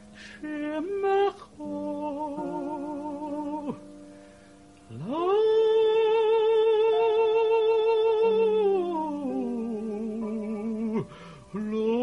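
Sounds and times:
man singing with vibrato: 0.0 - 4.0, 4.8 - 12.0.

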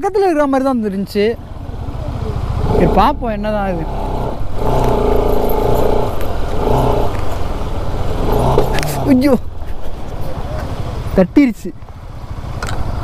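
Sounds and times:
motorcycle engine at low revs: 0.3 - 13.0.

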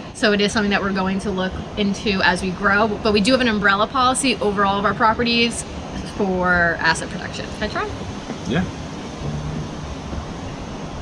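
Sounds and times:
faint low hum: 0.0 - 11.0
rumbling hiss: 0.0 - 11.0.

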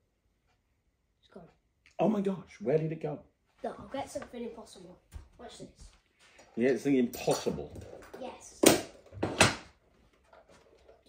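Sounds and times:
objects knocking on a tabletop: 7.2 - 9.7.

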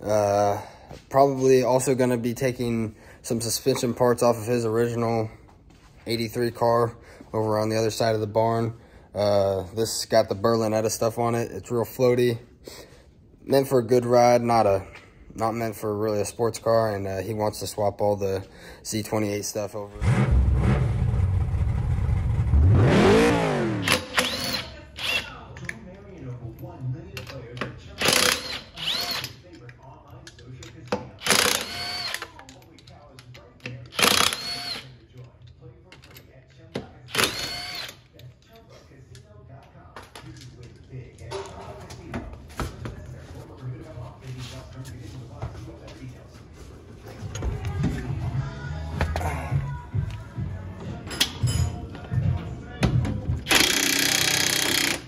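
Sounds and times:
impact wrench whirring: 20.0 - 25.3, 28.0 - 29.4, 31.2 - 32.3, 33.9 - 35.0, 37.1 - 38.1, 53.4 - 55.0.

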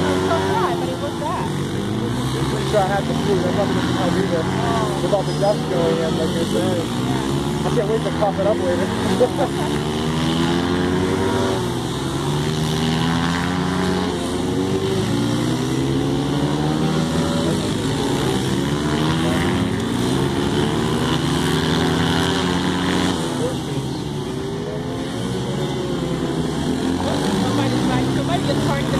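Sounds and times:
dirt bike engines revving: 0.0 - 28.9.

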